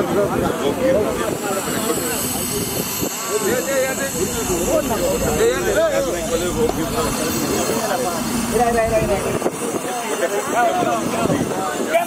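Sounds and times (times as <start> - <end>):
people talking indistinctly: 0.0 - 12.0
steady low rumble: 2.2 - 9.8.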